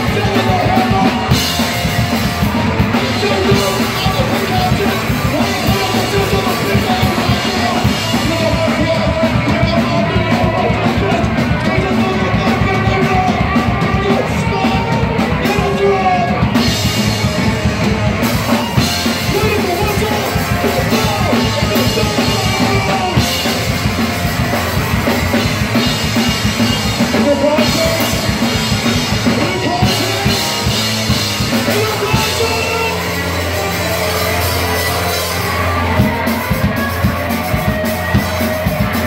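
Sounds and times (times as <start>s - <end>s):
drum kit: 0.0s - 39.0s
live rock band playing: 0.0s - 39.0s.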